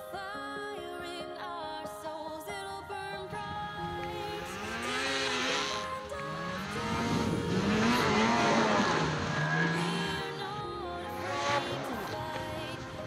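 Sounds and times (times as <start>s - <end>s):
background music: 0.0s - 13.0s
snowmobile engine revving: 3.7s - 13.0s.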